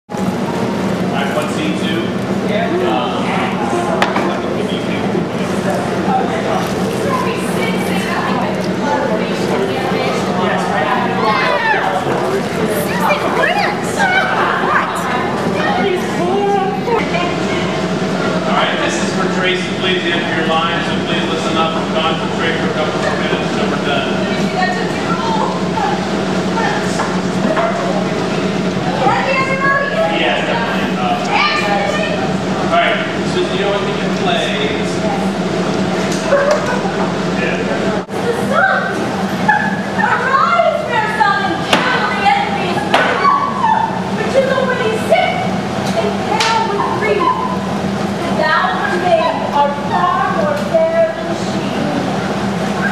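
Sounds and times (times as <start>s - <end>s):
indistinct chatter: 0.1s - 52.9s
people talking and exclaiming: 0.1s - 52.9s
low hum: 10.7s - 38.4s.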